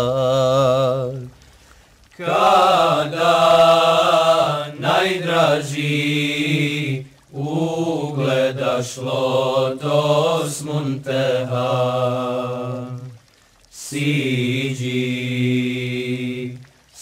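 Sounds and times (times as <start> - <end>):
male choir singing unaccompanied: 0.0 - 1.3, 2.2 - 13.2, 13.8 - 16.6.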